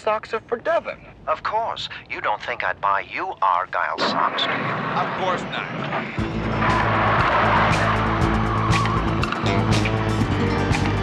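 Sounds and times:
tyres skidding: 4.7 - 11.0
music with steady beat: 6.2 - 11.0.

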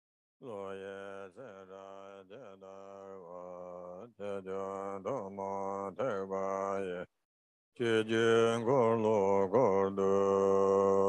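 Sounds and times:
man chanting in monotone: 0.4 - 7.2, 7.8 - 11.0.

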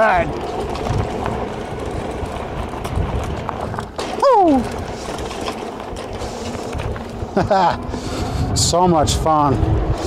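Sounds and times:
bike thumping and rattling: 0.0 - 8.4
wind rumbling on microphone: 0.0 - 10.0.

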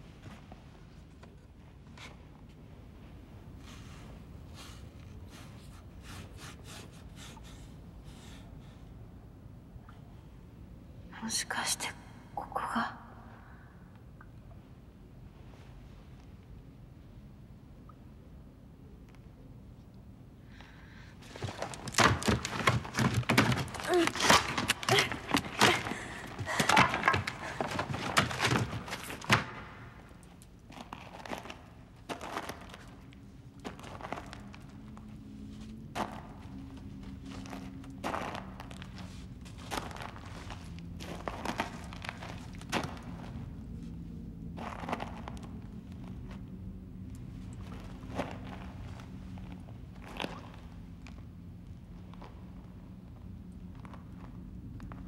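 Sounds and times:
wooden planks clattering: 21.3 - 29.6.

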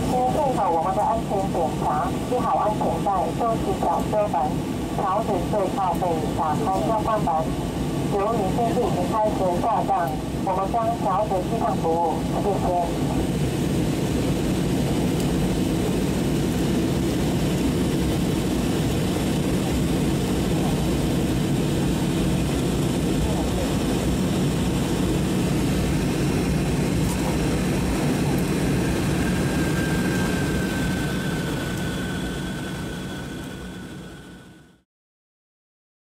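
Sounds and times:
airliner cabin engine rumble: 0.0 - 34.8.

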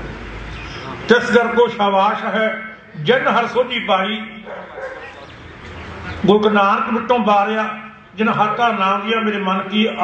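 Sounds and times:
background murmur: 0.0 - 1.8, 2.8 - 8.8
man speaking over microphone: 1.1 - 5.2, 6.2 - 10.0.

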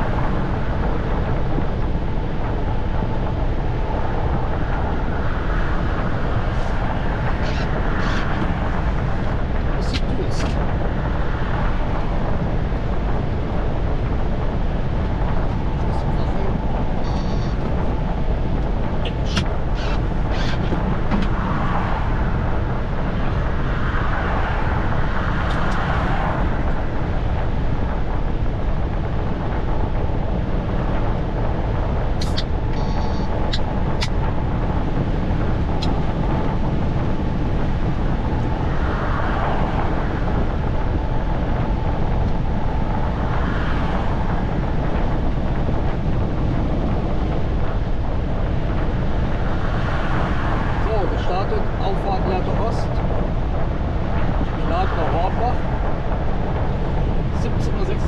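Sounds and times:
engine and road noise: 0.0 - 58.0.

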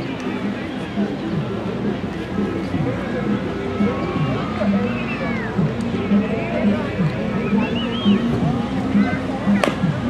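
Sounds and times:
overlapping voices chattering: 0.0 - 10.0.

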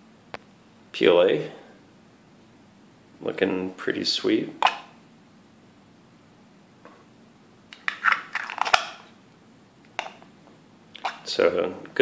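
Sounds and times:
plastic scraping: 7.8 - 9.0.

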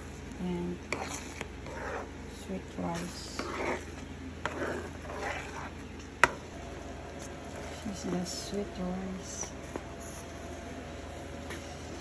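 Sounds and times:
spoon scraping sticky mixture: 0.0 - 11.9.

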